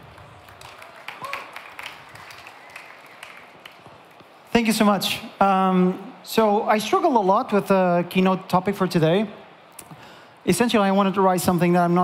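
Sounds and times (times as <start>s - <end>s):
audience applause: 0.0s - 4.4s.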